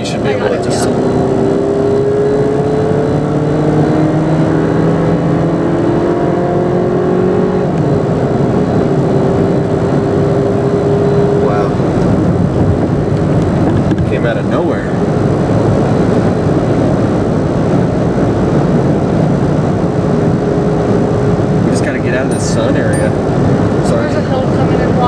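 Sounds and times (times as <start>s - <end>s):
car engine accelerating: 0.0s - 25.0s
road noise: 0.0s - 25.0s.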